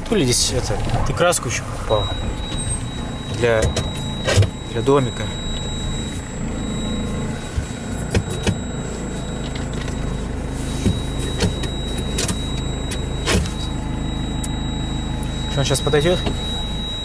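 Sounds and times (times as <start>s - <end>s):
thin high-pitched tone: 0.0s - 7.3s
diesel engine idling: 0.0s - 17.0s.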